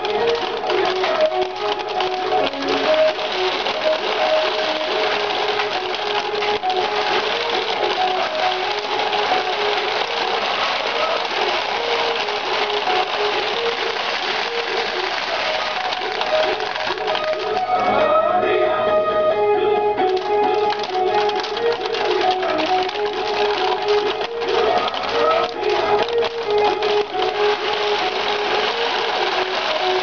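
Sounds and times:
rattle of steel balls: 0.0 - 17.7, 20.1 - 30.0
pachinko machine electronic melody: 0.0 - 17.8, 20.1 - 30.0.

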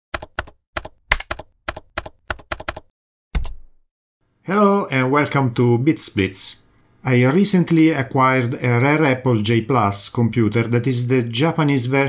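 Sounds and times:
keyboard typing: 0.1 - 3.6.

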